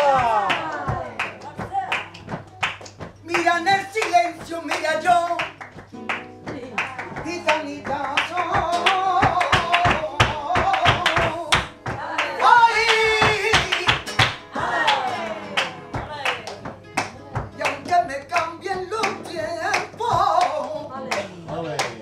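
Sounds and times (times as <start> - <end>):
woman singing flamenco: 0.0 - 21.9
rhythmic hand clapping: 0.0 - 22.0.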